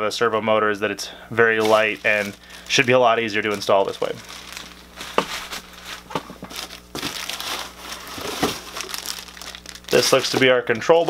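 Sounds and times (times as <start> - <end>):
plastic packaging crinkling: 1.4 - 11.0.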